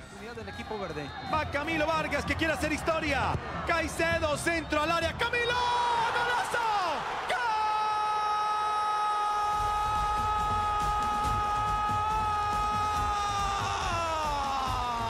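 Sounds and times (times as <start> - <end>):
stadium crowd roaring: 1.3 - 15.0.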